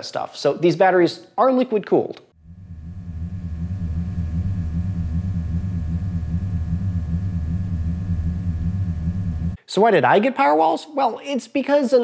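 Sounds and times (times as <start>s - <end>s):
cooling pump and fan humming: 2.4s - 9.6s
faint high steady tones: 2.4s - 9.6s.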